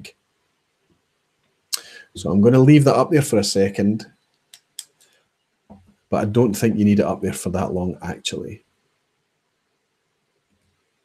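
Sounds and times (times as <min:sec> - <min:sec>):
speech: 0:00.0 - 0:00.2, 0:01.8 - 0:04.1, 0:06.1 - 0:08.6
faint sharp clicks: 0:00.9 - 0:01.9, 0:04.2 - 0:06.0.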